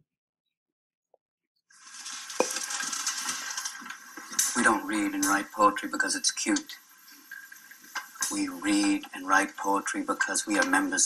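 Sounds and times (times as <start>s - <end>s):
steady hissing rustle: 1.7s - 11.0s.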